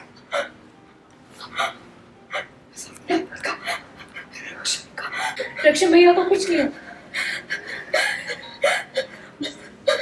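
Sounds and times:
woman sobbing: 1.4s - 10.0s.

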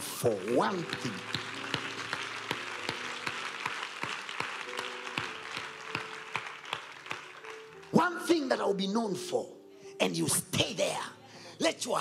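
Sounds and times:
audience applauding: 0.0s - 8.0s
soft background music: 0.0s - 12.0s.

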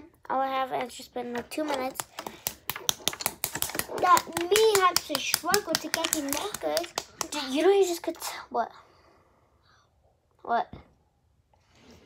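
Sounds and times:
false fingernails clicking together: 2.0s - 7.5s.

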